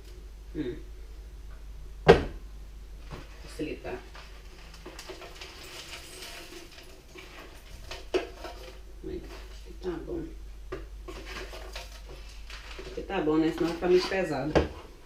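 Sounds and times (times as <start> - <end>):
spoon scraping plastic tub: 11.1 - 14.3.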